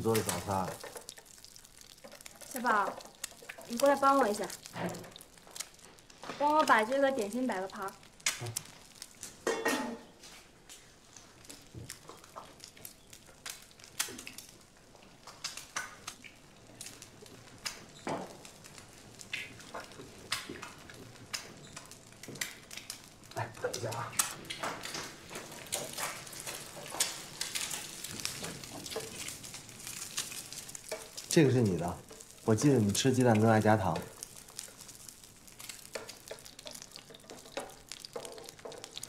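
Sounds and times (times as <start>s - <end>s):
dishes and cutlery clinking: 9.4s - 10.1s.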